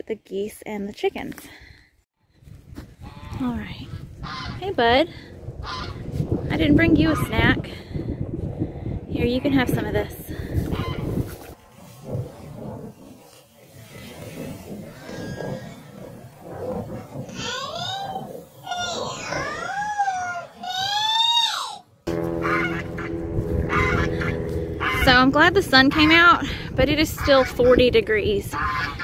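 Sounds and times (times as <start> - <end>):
drawn-out animal calls: 5.6 - 6.0, 22.4 - 26.4.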